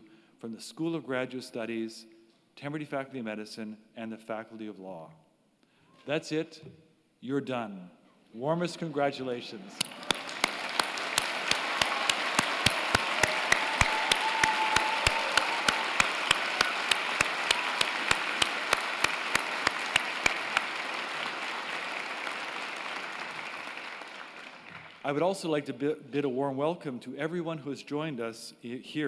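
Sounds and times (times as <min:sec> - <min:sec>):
even beat of claps: 0:09.8 - 0:25.1
audience applauding: 0:09.8 - 0:25.2.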